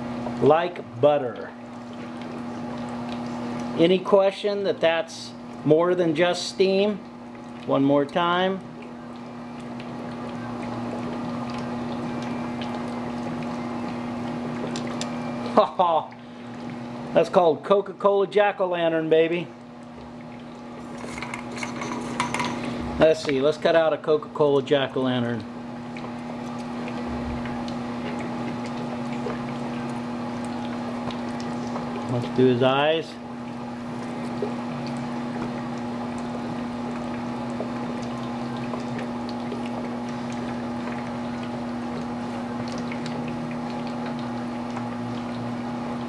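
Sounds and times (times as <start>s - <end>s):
water bubbling: 0.0s - 18.0s, 18.7s - 46.0s.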